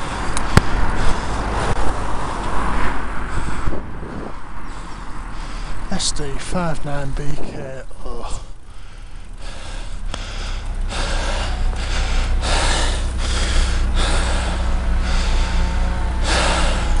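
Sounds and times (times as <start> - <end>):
heavy breathing: 0.0 - 6.0, 7.9 - 17.0
traffic idling rumble: 0.0 - 17.0.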